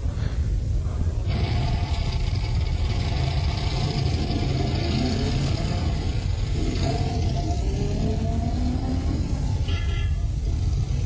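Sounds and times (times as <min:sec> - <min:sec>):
rumbling live audience: 0:00.0 - 0:11.0
car engine sound effect: 0:01.3 - 0:11.0.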